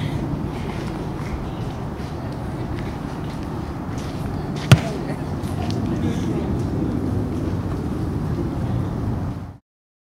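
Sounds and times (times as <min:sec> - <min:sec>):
sharp thump: 0:04.7 - 0:05.0.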